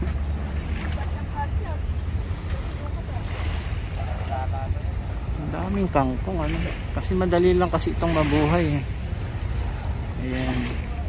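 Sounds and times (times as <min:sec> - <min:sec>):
faint voices: 0:00.6 - 0:11.0.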